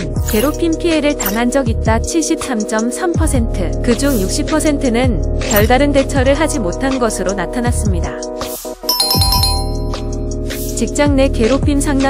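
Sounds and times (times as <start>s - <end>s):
background music: 8.9s - 10.2s
bright chime sound effect: 8.9s - 10.2s.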